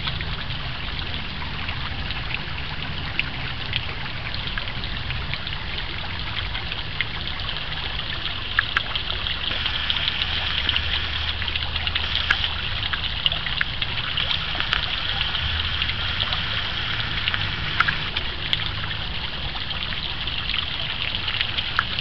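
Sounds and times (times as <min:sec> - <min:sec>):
low steady rumble: 0:00.0 - 0:22.0
water splashing into pond: 0:00.0 - 0:22.0.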